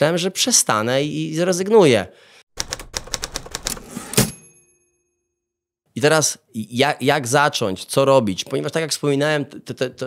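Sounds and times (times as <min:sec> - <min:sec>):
typewriter bell ding: 0:03.7 - 0:04.9.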